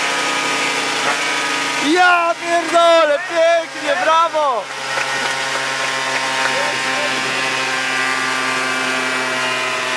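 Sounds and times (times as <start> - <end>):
scooter engine idling: 3.2 - 9.3.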